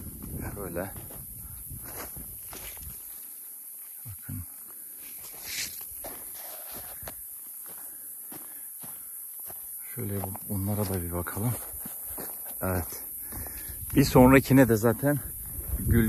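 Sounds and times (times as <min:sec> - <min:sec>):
footsteps on dry soil and grass: 0:00.0 - 0:04.0, 0:04.6 - 0:16.0
leaves rustling: 0:04.8 - 0:07.3.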